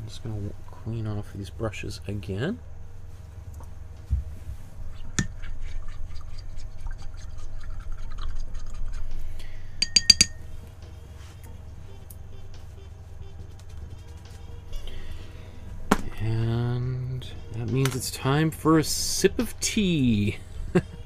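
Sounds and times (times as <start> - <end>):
glassy clinks: 9.8 - 10.4.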